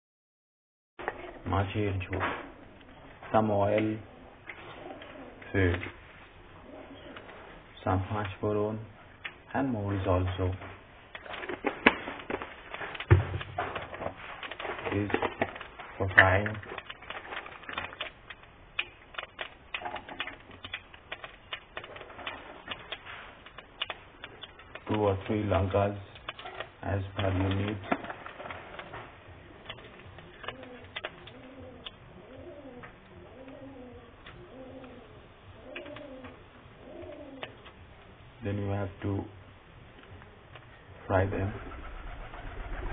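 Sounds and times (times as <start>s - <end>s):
pigeon cooing: 4.0s - 5.6s, 6.6s - 7.6s, 27.3s - 37.7s, 41.3s - 42.9s.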